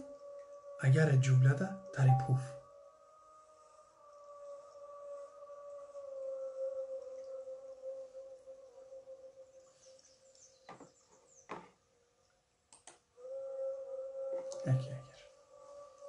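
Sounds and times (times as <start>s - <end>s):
long held wavering tone: 1.4s - 2.7s.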